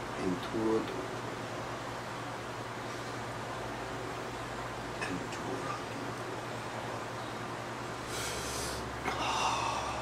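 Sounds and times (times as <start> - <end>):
person breathing forcefully: 8.0 - 10.0.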